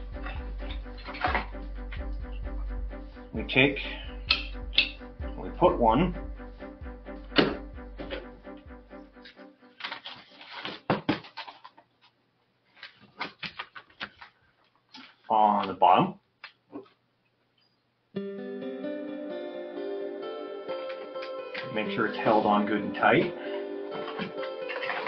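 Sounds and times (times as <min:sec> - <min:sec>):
background music: 0:00.0 - 0:10.8, 0:18.2 - 0:25.0.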